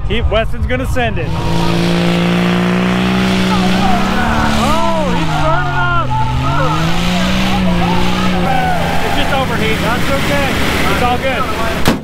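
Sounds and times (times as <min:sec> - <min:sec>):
crowd shouting and cheering: 0:00.0 - 0:12.0
engine revving under load: 0:00.0 - 0:12.0.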